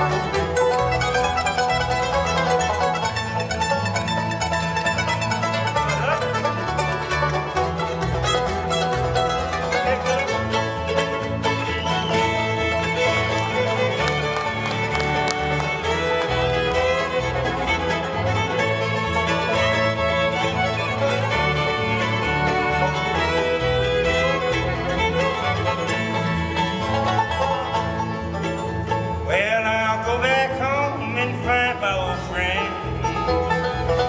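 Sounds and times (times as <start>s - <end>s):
bluegrass band playing: 0.0s - 34.0s.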